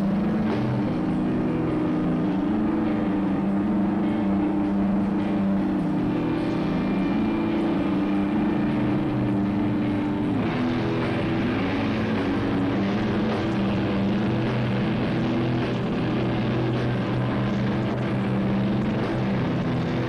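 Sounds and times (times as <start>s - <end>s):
live grunge band playing: 0.0s - 20.0s.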